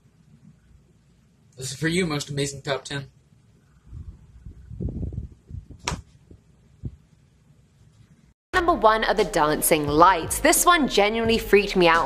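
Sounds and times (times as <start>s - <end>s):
muffled thumps: 4.7s - 7.1s.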